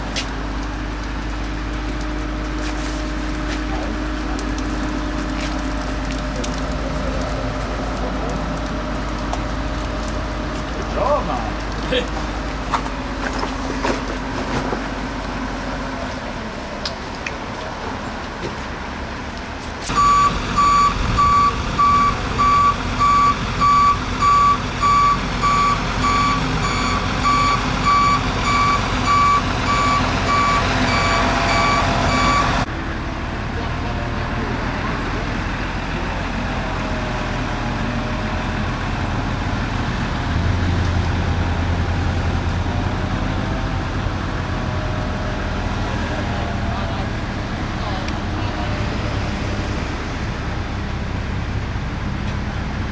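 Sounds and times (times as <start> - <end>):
truck engine running: 0.0 - 52.9
reversing warning beeper: 19.9 - 32.7.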